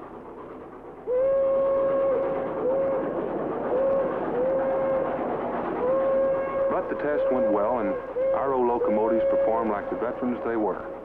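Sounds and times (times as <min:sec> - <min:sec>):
train running noise: 0:00.0 - 0:11.0
steam locomotive whistle: 0:01.1 - 0:10.9.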